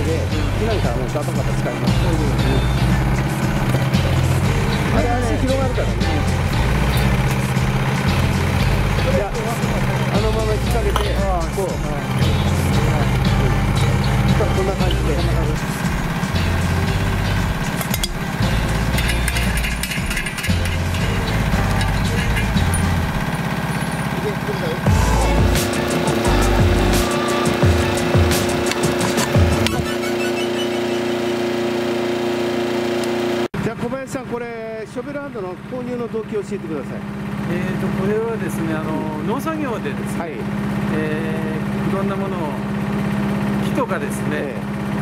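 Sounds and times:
background music: 0:00.0 - 0:31.8
mini excavator running: 0:00.0 - 0:45.0.

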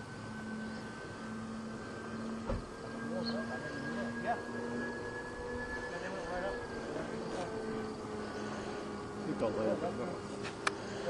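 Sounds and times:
model plane motors whining: 0:00.0 - 0:11.0.

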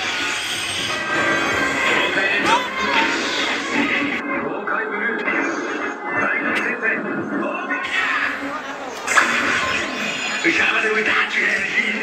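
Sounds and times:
music over loudspeakers: 0:00.0 - 0:12.0
voices: 0:00.9 - 0:12.0.

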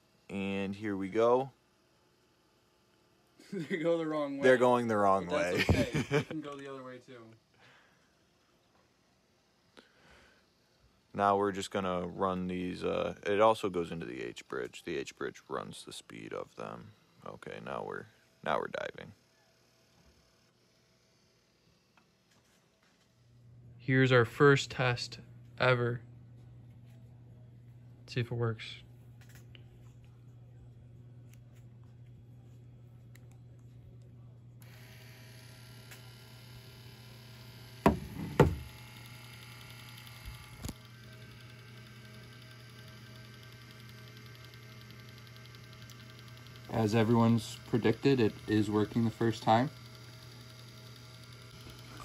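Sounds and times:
small electric motors running: 0:00.0 - 0:23.4, 0:34.6 - 0:52.0
sharp knocks: 0:37.9 - 0:38.6.

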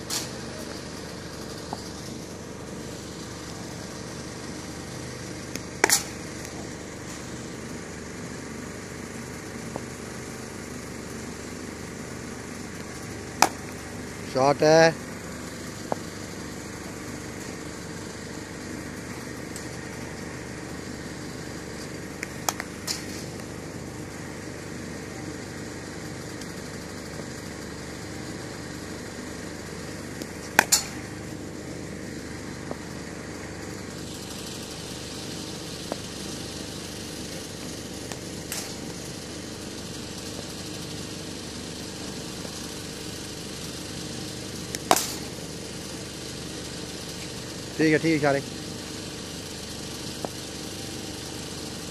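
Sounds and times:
steady engine-like hum: 0:00.0 - 0:51.9.

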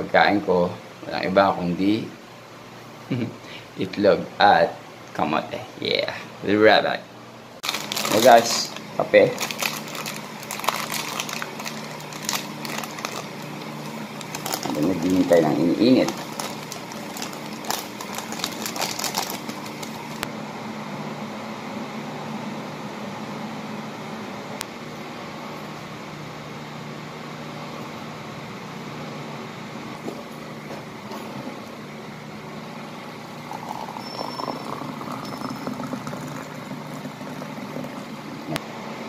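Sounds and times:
low mechanical hum: 0:00.0 - 0:39.0
foil sachet crinkling: 0:07.6 - 0:20.2.

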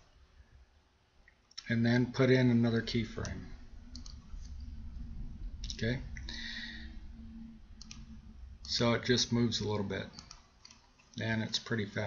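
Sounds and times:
computer mouse clicks: 0:03.2 - 0:04.5, 0:07.8 - 0:08.8, 0:10.1 - 0:11.2.

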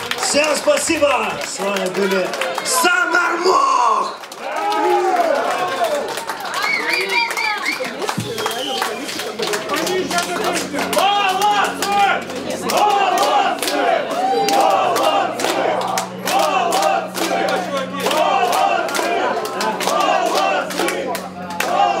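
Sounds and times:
sharp claps: 0:00.0 - 0:03.0, 0:04.0 - 0:22.0
crowd shouting and chanting: 0:00.0 - 0:22.0
low amplifier hum: 0:08.0 - 0:22.0.

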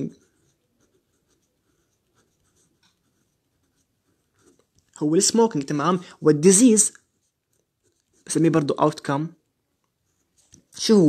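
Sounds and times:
pen scratching on paper: 0:00.0 - 0:05.5, 0:06.5 - 0:08.7.

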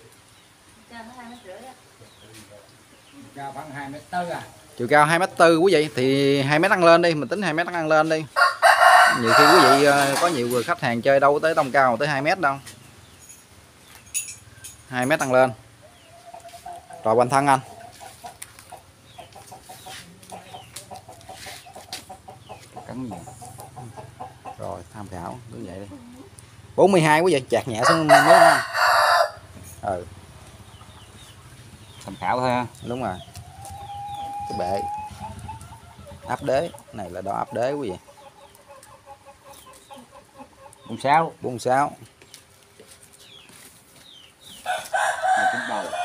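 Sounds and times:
chickens clucking: 0:00.0 - 0:46.0.

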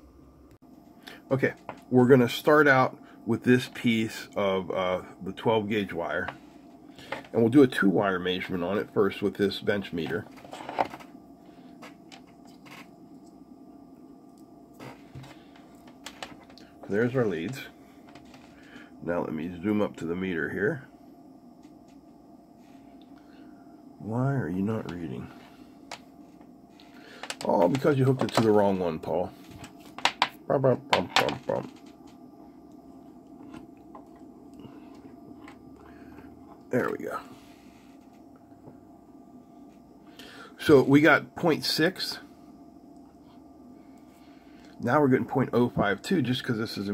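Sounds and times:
low steady hum: 0:00.0 - 0:46.9.

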